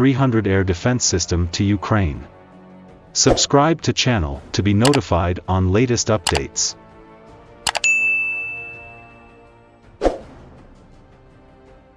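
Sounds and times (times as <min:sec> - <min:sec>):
bell-like notification ding: 0:07.7 - 0:09.5.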